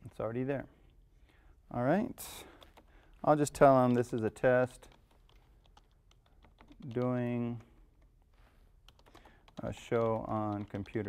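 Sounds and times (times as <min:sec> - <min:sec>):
computer keyboard typing: 0:02.3 - 0:11.0.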